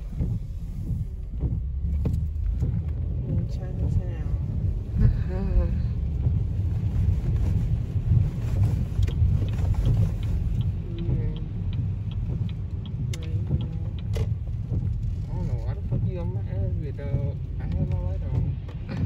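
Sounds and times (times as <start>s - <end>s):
road and engine rumble in car: 0.0s - 19.0s
light ticking: 7.7s - 19.0s.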